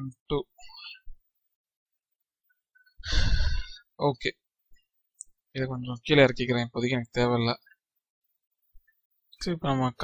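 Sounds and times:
person sighing: 0:03.0 - 0:03.8.

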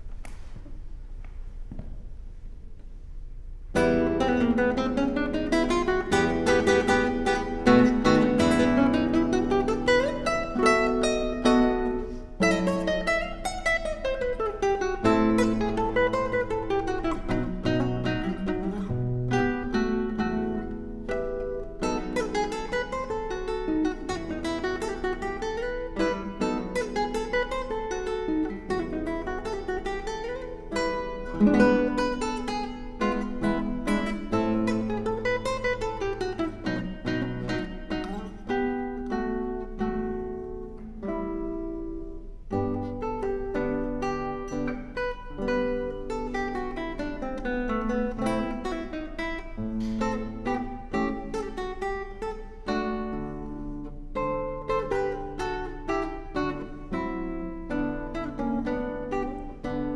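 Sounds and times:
classical guitar playing: 0:00.0 - 0:59.9.

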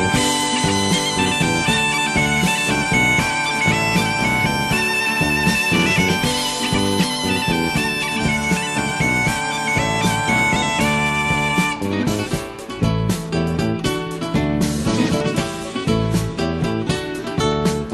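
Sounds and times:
bagpipe melody with drone: 0:00.0 - 0:12.3
percussion beat: 0:00.0 - 0:17.9.

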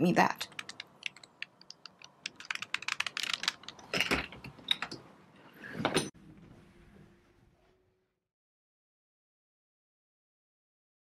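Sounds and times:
puzzle cube clicking: 0:00.4 - 0:03.8.

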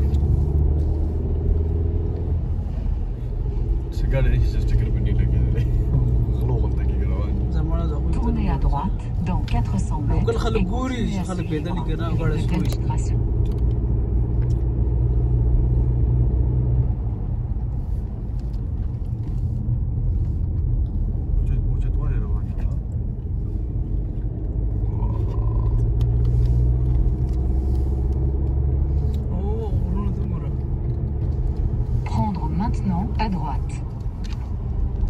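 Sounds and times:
car engine and tyre rumble: 0:00.0 - 0:35.0.

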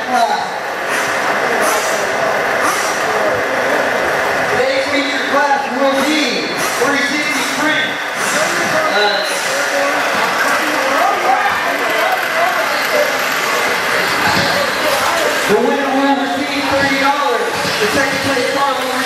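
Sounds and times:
people talking: 0:00.0 - 0:19.0
radio-controlled cars racing: 0:00.0 - 0:19.0
man talking loudly: 0:04.5 - 0:12.4, 0:14.2 - 0:19.0.

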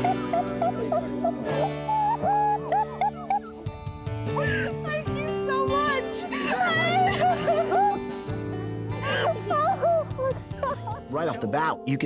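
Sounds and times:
background music: 0:00.0 - 0:12.0
excited voices squealing: 0:00.2 - 0:03.6, 0:06.0 - 0:08.0.

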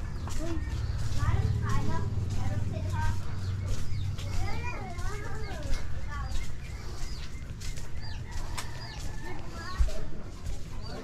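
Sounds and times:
bird chirping: 0:00.0 - 0:11.0
footsteps clicking: 0:00.0 - 0:11.0
low background rumble: 0:00.1 - 0:08.9.

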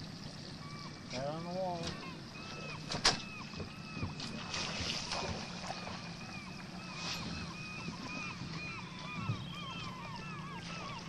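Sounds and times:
boat motor humming: 0:00.0 - 0:11.0
flock of birds calling: 0:00.6 - 0:11.0.

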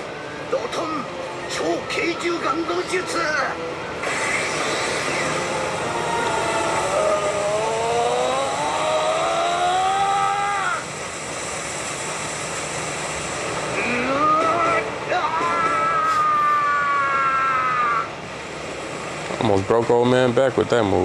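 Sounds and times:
steady rumbling noise: 0:00.0 - 0:21.0
rising drawn-out tone: 0:04.0 - 0:11.6, 0:13.3 - 0:15.2.

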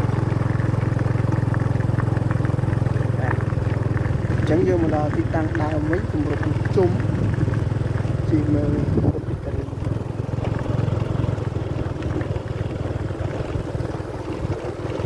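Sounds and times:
wind buffeting microphone: 0:03.0 - 0:10.2.

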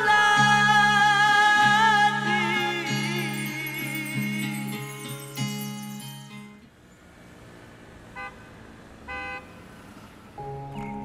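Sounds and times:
city traffic hum: 0:00.0 - 0:11.0
car horn honks: 0:08.2 - 0:08.4, 0:09.1 - 0:09.6.

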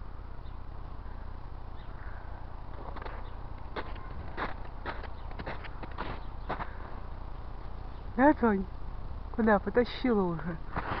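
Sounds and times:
footsteps crunching on snow: 0:02.7 - 0:07.0, 0:10.7 - 0:11.0.

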